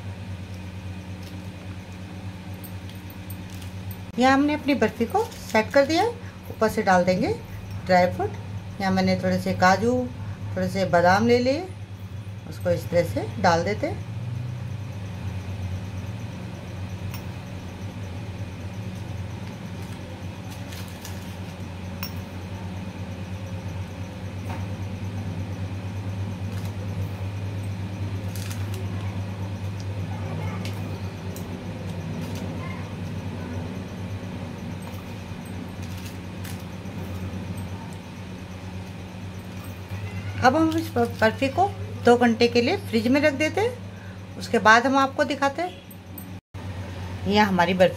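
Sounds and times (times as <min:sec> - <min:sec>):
steady low hum: 0:00.0 - 0:47.9.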